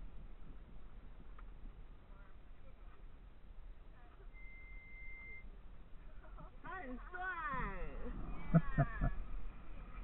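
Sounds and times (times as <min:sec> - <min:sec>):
woman laughing: 0:08.4 - 0:09.2.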